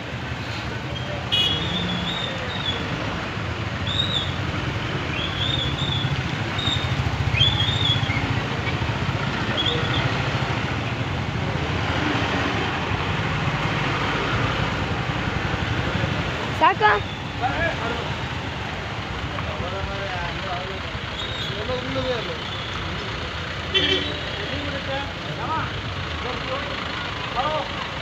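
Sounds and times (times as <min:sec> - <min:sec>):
road noise: 0:00.0 - 0:28.0
vehicle engines humming: 0:00.0 - 0:28.0.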